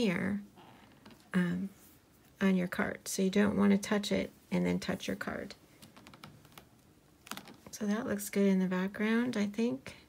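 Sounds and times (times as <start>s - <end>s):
woman speaking: 0.0s - 0.5s, 1.3s - 1.8s, 2.4s - 5.6s, 7.7s - 10.0s.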